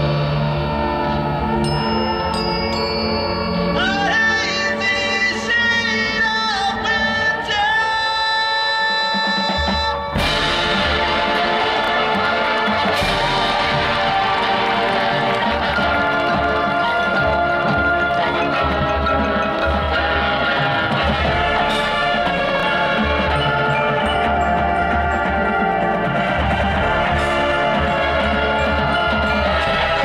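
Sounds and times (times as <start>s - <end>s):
marching band playing: 0.0s - 30.0s
steady low drum beat: 9.4s - 18.1s.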